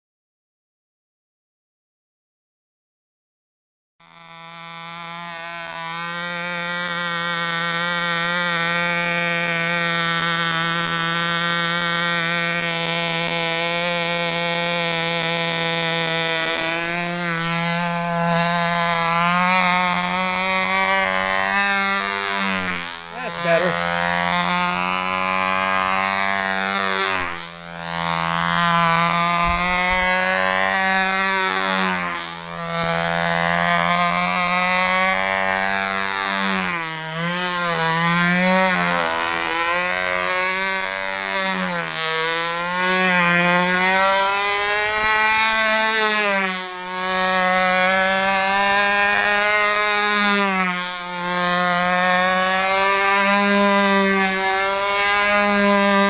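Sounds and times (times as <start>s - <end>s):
model plane engine high-pitched buzz: 4.0s - 56.0s.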